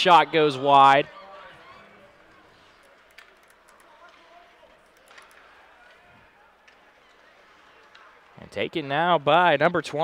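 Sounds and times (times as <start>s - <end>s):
stick and puck clacks: 2.8s - 6.0s.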